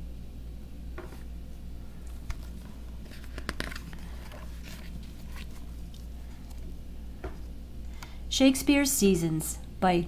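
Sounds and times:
steady low hum: 0:00.0 - 0:10.0
book pages turning: 0:02.0 - 0:07.5.

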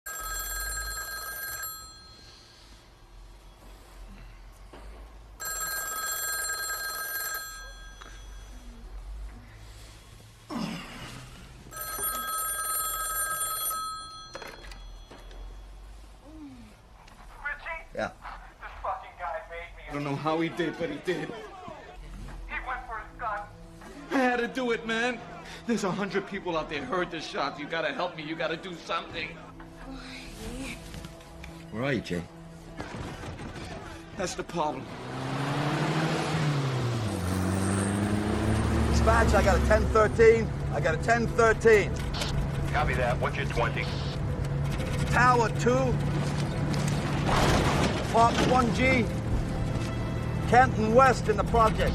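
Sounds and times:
telephone bell ringing: 0:00.0 - 0:02.8, 0:05.4 - 0:08.6, 0:11.7 - 0:15.8
car engine driving: 0:34.8 - 0:51.9.

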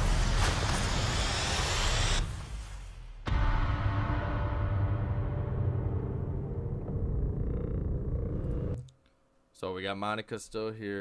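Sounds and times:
deep low rumbling drone: 0:03.9 - 0:08.8.

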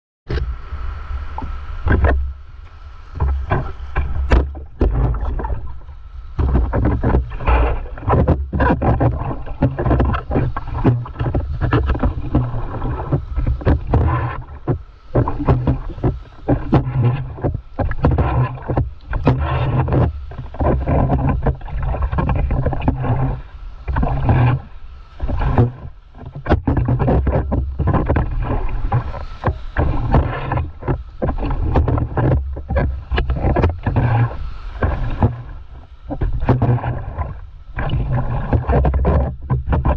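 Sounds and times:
whitewater splashing against board: 0:00.3 - 0:39.9
wind buffeting on microphone: 0:00.3 - 0:39.9.

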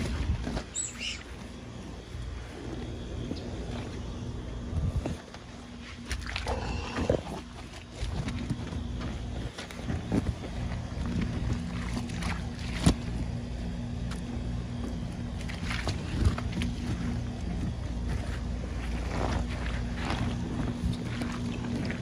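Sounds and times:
steady low hum: 0:00.0 - 0:22.0
water sloshing in a plastic pool: 0:00.0 - 0:22.0.

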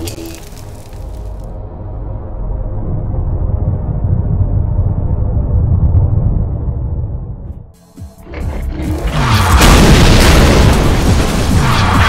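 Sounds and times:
music: 0:00.0 - 0:12.0
rumbling explosion: 0:09.1 - 0:12.0.

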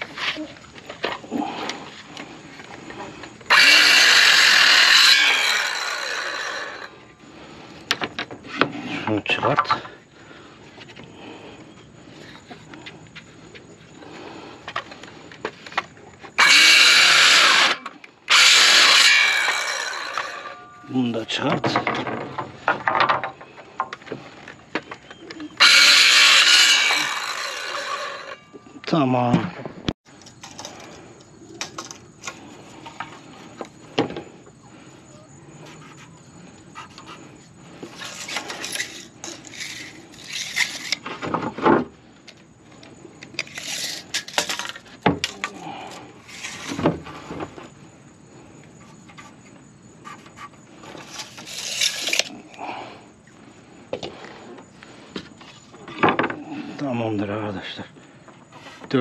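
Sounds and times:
circular saw cutting wood: 0:03.0 - 0:07.1, 0:16.4 - 0:20.8, 0:25.5 - 0:28.6, 0:36.7 - 0:41.0, 0:43.4 - 0:44.7, 0:50.0 - 0:52.3
saw blade spinning down: 0:03.5 - 0:06.9, 0:16.4 - 0:20.8, 0:25.6 - 0:28.5.

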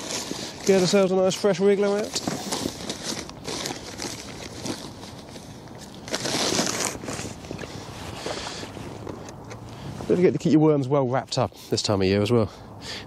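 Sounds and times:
rustling of tackle bag: 0:00.0 - 0:10.4.

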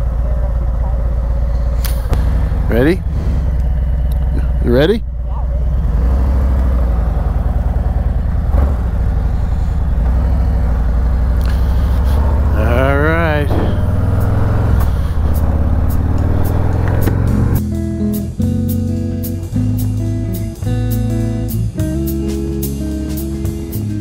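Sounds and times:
motorcycle engine running: 0:00.0 - 0:24.0.

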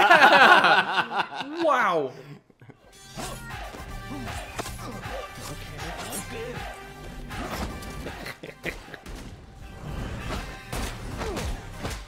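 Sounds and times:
action film music: 0:02.8 - 0:12.0.

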